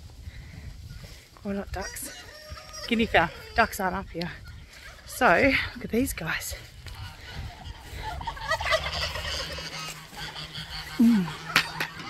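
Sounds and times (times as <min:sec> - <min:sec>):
poultry calling: 0:00.9 - 0:12.0.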